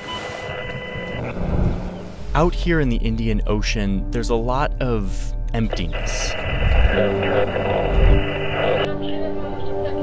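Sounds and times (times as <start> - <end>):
low rumbling drone: 0.5 - 9.7.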